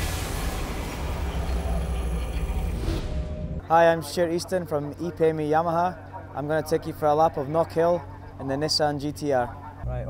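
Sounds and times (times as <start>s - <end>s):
loud vehicle rumble: 0.0s - 3.7s.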